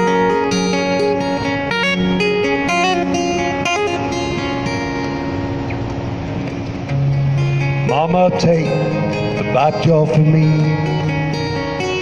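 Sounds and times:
acoustic guitar strum: 0.0s - 12.0s
street traffic noise: 0.0s - 12.0s.

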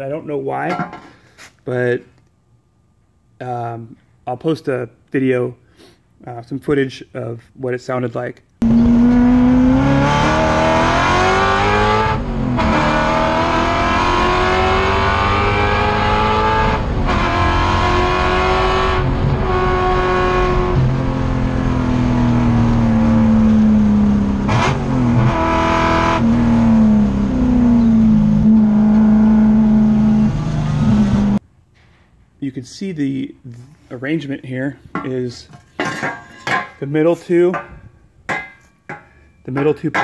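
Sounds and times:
race car engine at full throttle: 8.6s - 31.4s.

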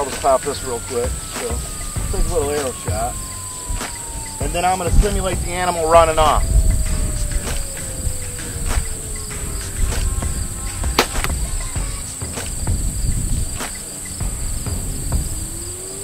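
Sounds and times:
bow shot snap: 0.0s - 0.5s, 6.2s - 8.0s, 8.6s - 12.7s
insects chirring: 0.0s - 16.0s.

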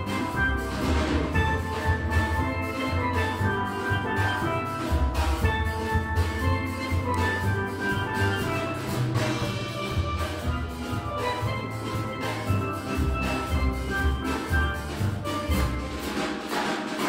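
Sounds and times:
steel band playing: 0.0s - 17.0s.

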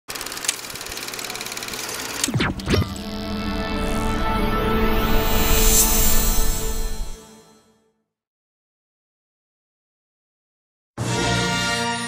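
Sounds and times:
film projector clattering: 0.1s - 2.4s.

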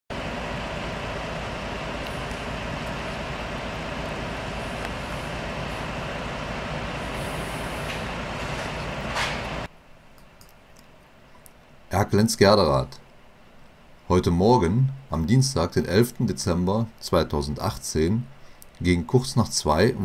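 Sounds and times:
diesel engines idling: 0.1s - 9.7s
loud hiss: 0.1s - 9.7s.

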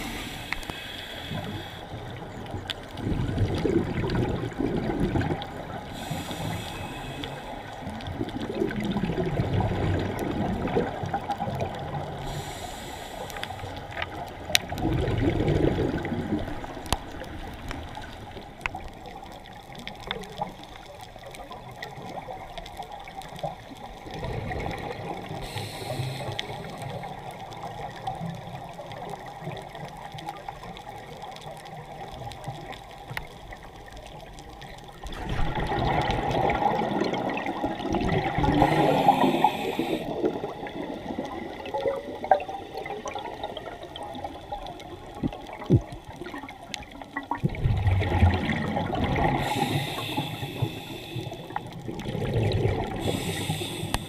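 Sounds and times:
exhaled air bubbling underwater: 0.0s - 54.0s
short hisses of air: 25.4s - 26.5s, 38.6s - 40.0s, 49.4s - 51.5s, 53.0s - 54.0s.

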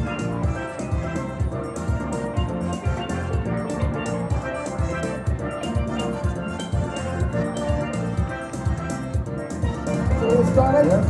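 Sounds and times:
steelpans playing melody: 0.0s - 11.0s.

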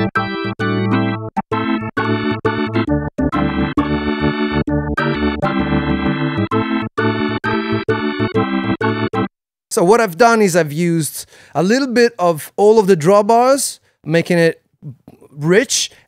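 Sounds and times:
organ playing chords: 0.0s - 9.4s.

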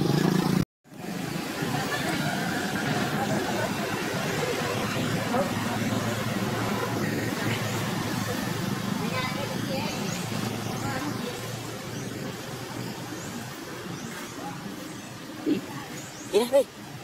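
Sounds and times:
low traffic rumble: 0.0s - 17.0s
people talking indistinctly: 3.0s - 12.4s.

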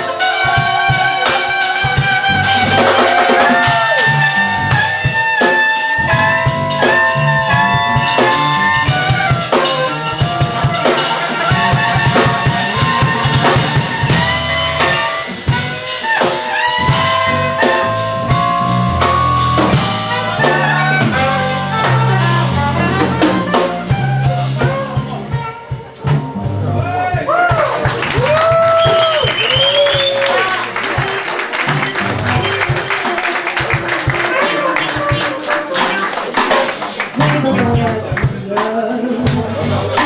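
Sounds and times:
bass: 0.0s - 40.0s
drum kit: 0.0s - 40.0s
piano: 0.0s - 40.0s
saxophone lead line: 0.0s - 40.0s.

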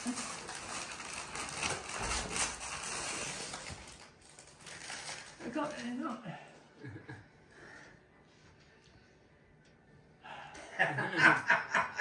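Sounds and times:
wrapping paper tearing and rustling: 0.0s - 6.2s.

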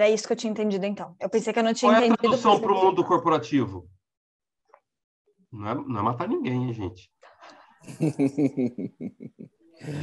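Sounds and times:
people laughing: 7.9s - 10.0s.

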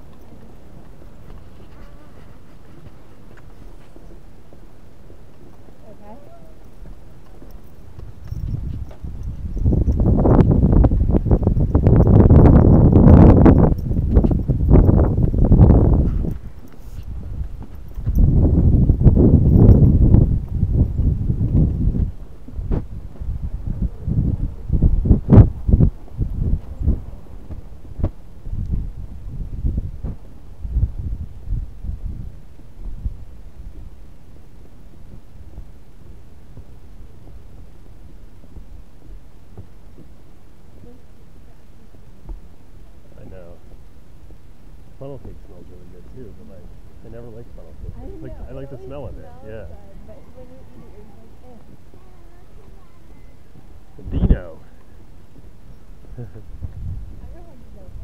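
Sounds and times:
footsteps on wooden boards: 0.0s - 5.8s, 6.6s - 9.5s, 13.9s - 18.2s, 27.3s - 28.3s, 32.5s - 40.8s
heavy rumbling on microphone: 7.9s - 58.0s.

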